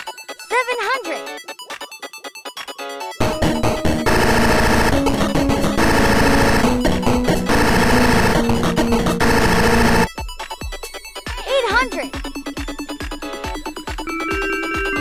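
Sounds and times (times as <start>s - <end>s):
cartoon music: 3.2s - 10.1s
light plucked background music: 3.2s - 10.1s.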